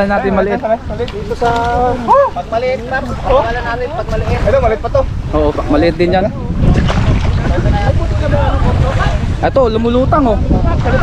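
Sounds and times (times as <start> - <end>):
voices: 0.0 - 11.0
wind buffeting microphone: 0.0 - 11.0
water sloshing: 0.8 - 9.6
low rumble: 0.9 - 11.0.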